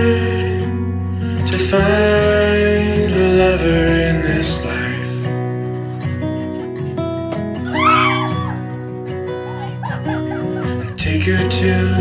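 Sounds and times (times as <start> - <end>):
instrumental background music: 0.0 - 12.0
women shrieking and laughing: 7.6 - 11.0.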